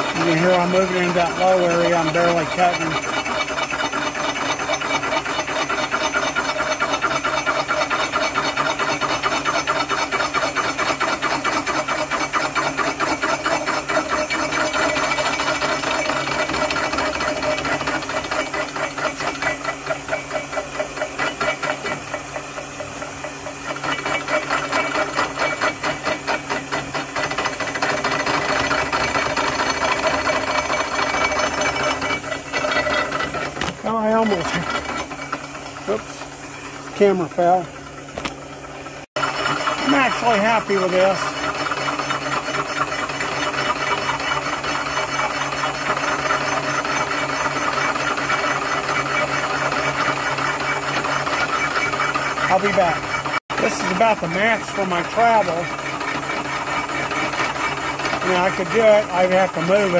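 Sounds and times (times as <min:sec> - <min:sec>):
milling cutter chattering on metal: 0:00.0 - 0:59.9.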